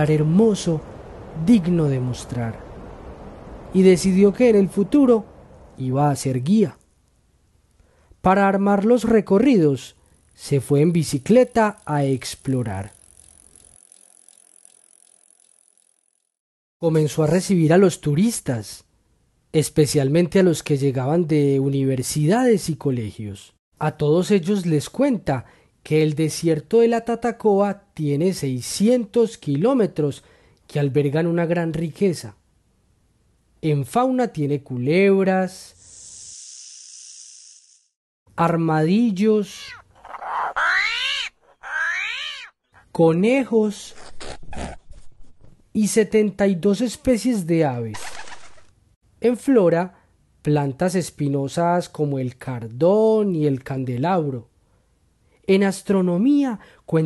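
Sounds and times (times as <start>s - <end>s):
bicycle freewheel ticking: 11.3s - 16.4s
animal high-pitched calls: 39.5s - 42.6s.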